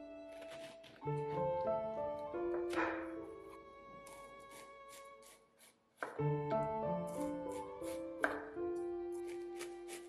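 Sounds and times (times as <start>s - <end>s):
background music with held notes: 0.0s - 5.3s, 6.0s - 10.0s
knife slicing cabbage on board: 0.3s - 0.9s, 4.0s - 6.2s, 7.1s - 8.5s, 9.1s - 10.0s.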